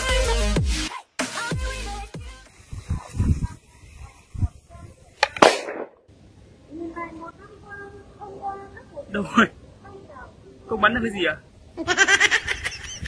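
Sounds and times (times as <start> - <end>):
plastic bottle bursting: 5.2 - 6.0.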